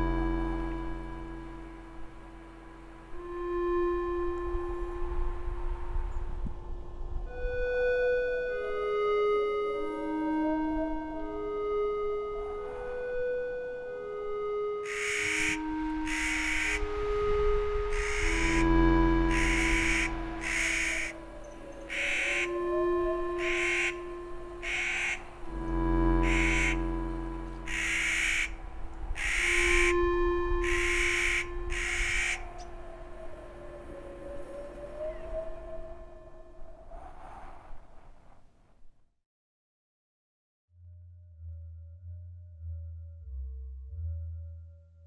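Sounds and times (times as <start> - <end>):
low drone: 0.0 - 37.0
slow ambient music: 0.0 - 37.2, 40.8 - 45.0
bird giving harsh grating calls: 14.9 - 16.8, 18.0 - 18.6, 19.3 - 21.1, 21.8 - 22.5, 23.4 - 24.0, 24.6 - 25.3, 26.2 - 26.8, 27.7 - 28.6, 29.2 - 30.0, 30.6 - 32.7.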